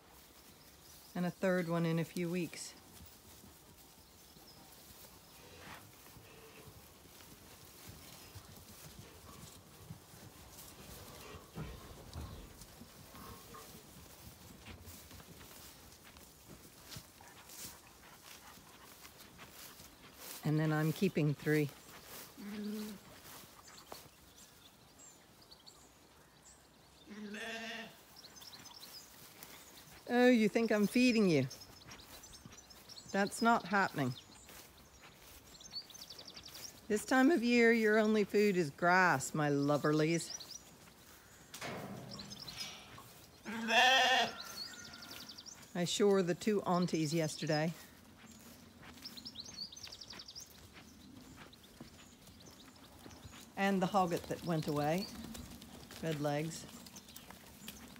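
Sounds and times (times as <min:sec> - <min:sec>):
sheep bleating: 0:27.1 - 0:28.0, 0:42.6 - 0:45.0.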